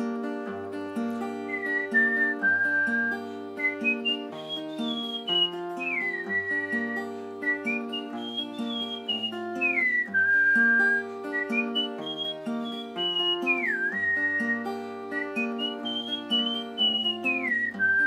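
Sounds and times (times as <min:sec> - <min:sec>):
acoustic guitar chords: 0:00.0 - 0:18.0
high whistled melody: 0:01.4 - 0:18.0.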